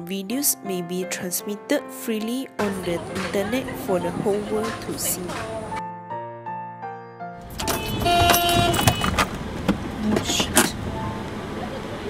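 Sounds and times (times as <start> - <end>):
road traffic: 2.6 - 5.8, 7.4 - 12.0.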